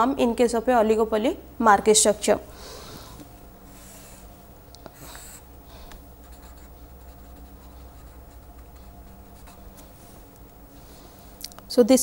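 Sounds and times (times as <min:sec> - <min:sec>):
steady low hum: 0:00.0 - 0:12.0
marker scratching on paper: 0:06.2 - 0:09.9.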